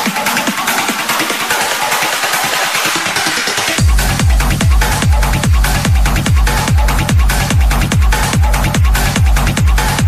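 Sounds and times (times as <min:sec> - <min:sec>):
trance music breakdown: 0:00.0 - 0:10.0.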